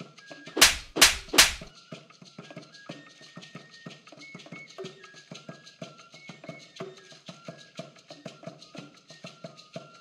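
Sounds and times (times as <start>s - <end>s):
fight hit sound effects: 0.6s - 1.7s.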